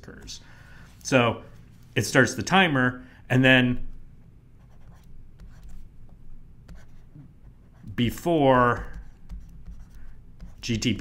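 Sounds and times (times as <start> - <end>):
stylus scratching on tablet: 4.6 - 6.0, 6.6 - 11.0.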